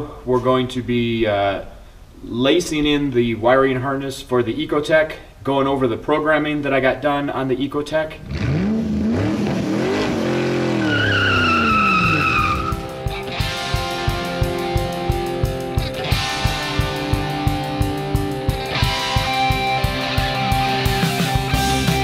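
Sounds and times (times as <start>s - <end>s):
engine revving: 8.2s - 13.6s
tyre squeal: 10.6s - 12.9s
rock music with drum beat: 12.5s - 22.0s.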